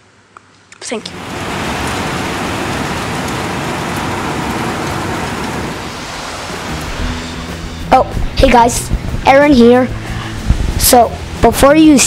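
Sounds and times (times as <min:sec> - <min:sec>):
heavy rain pouring: 0:01.0 - 0:12.0.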